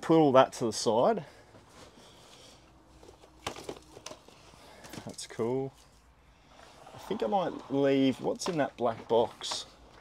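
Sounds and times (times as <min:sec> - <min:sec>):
plastic cases clacking together: 0:03.0 - 0:05.4, 0:07.0 - 0:10.0.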